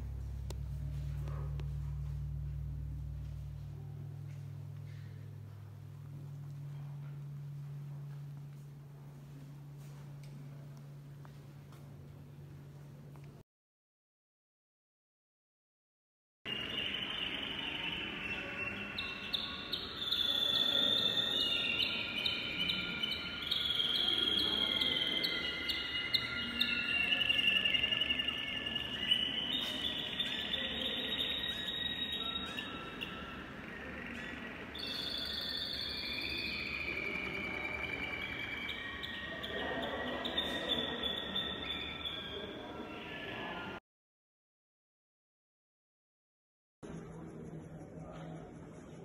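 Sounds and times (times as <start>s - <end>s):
canaries singing rolling trills: 16.5s - 43.7s.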